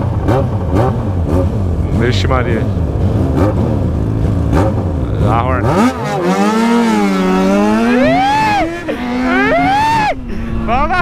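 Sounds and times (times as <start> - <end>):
motorcycle engine accelerating: 0.0 - 10.2.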